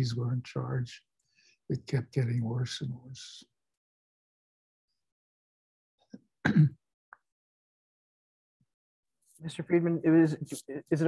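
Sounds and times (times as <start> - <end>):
person clearing throat: 6.4 - 6.8.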